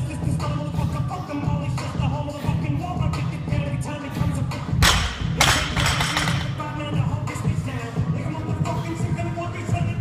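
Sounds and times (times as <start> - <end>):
barbell dropped on gym floor: 4.8 - 6.5.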